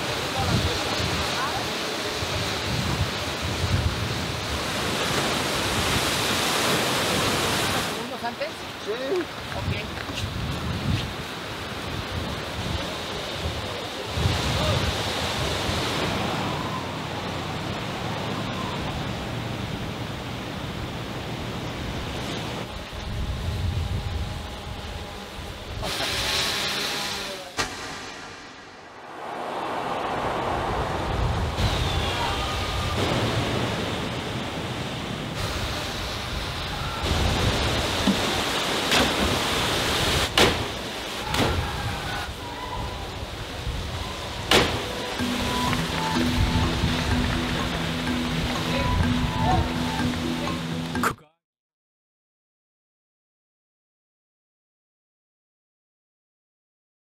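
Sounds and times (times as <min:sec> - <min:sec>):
sea surf: 0:00.0 - 0:51.1
wind: 0:00.0 - 0:51.4.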